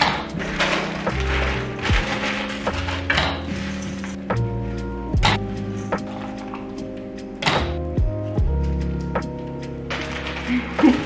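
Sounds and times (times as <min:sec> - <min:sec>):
background music with bass line: 0:00.0 - 0:11.0
plastic bag crinkling: 0:00.3 - 0:04.2, 0:09.9 - 0:11.0.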